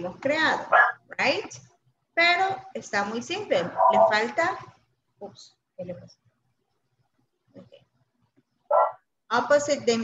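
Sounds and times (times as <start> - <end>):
dog barking: 0.6 - 1.0, 8.7 - 9.0.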